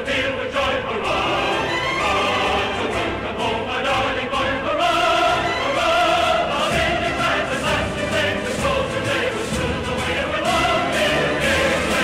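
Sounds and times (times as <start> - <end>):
choir singing long held notes: 0.0 - 12.0.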